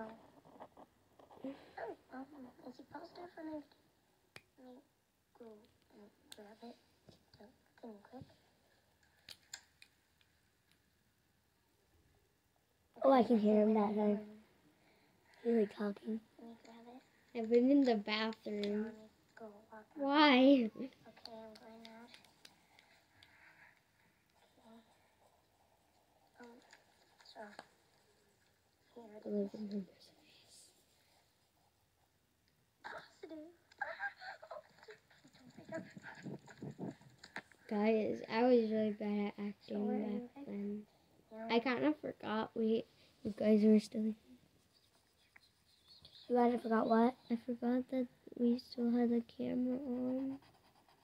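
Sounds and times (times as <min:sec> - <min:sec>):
child giggling: 0:32.8 - 0:37.1.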